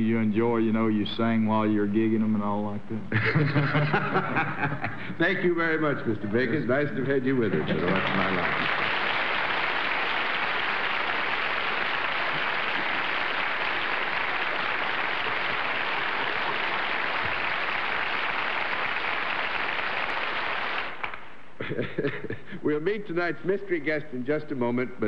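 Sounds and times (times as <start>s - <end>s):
audience applauding: 7.4s - 21.3s.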